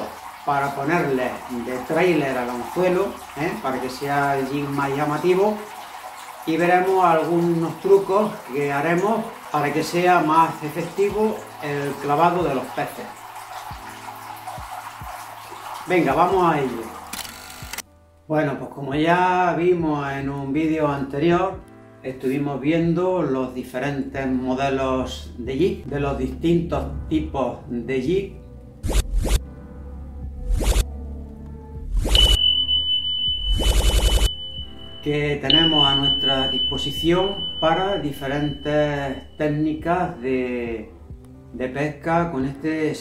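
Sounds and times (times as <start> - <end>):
fountain water trickling: 0.0 - 17.8, 32.1 - 40.2
high electronic beep: 32.0 - 40.2
faint low sustained tones: 32.0 - 40.3.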